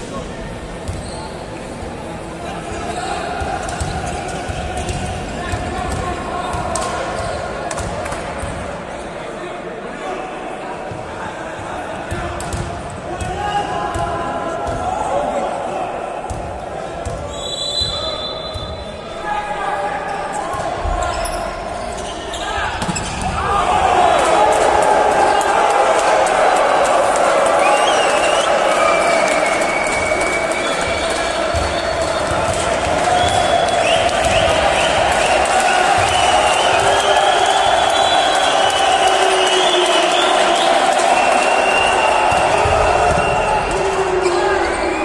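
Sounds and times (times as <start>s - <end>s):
din of spectators' voices: 0.0s - 45.0s
players shouting: 17.2s - 45.0s
whistle blast: 17.3s - 18.8s
volleyball hits: 30.8s - 37.1s, 42.2s - 43.8s.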